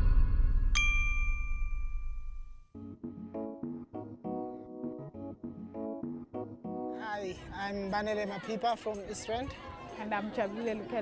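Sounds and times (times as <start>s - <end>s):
bell-like ding: 0.7s - 2.6s
keyboard chords: 2.7s - 9.0s.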